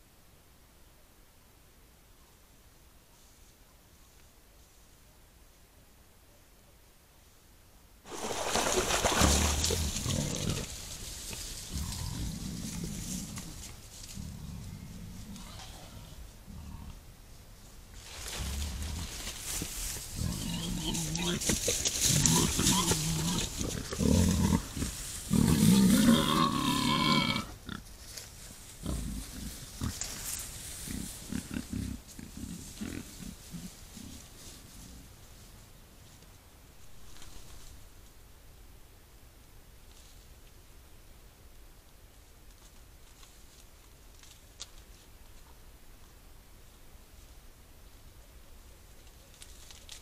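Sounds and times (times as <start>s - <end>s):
wild boar grunting: 8.1s - 17.1s, 18.3s - 19.4s, 20.1s - 27.9s, 28.8s - 35.1s
wild boar grunt-squeal: 20.2s - 21.5s.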